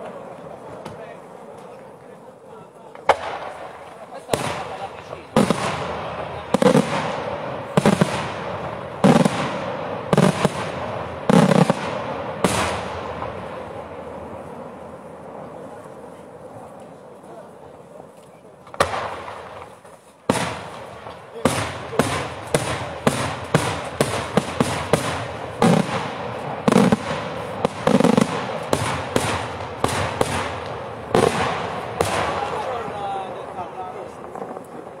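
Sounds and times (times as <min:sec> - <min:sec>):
fireworks banging: 0:00.0 - 0:35.0
echoing fireworks barrage: 0:02.9 - 0:16.8, 0:18.6 - 0:35.0.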